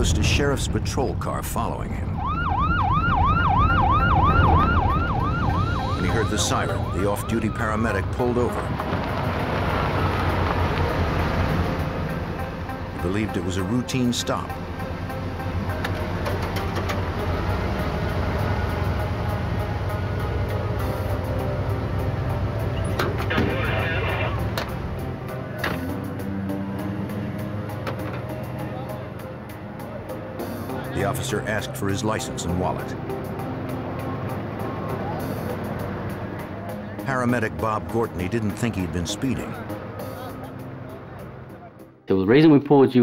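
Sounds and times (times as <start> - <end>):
low vehicle rumble: 0.0 - 41.9
background music score: 0.0 - 43.0
police siren yelping: 2.0 - 8.8, 22.6 - 24.8, 34.0 - 35.7.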